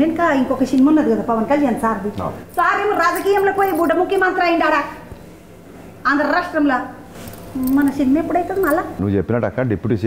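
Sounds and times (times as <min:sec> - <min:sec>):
woman talking animatedly: 0:00.0 - 0:05.0, 0:07.6 - 0:09.0.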